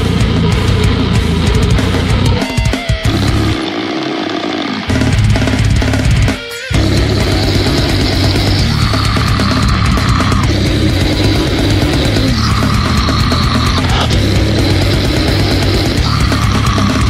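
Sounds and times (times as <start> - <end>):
death metal band playing: 0.0 - 17.0.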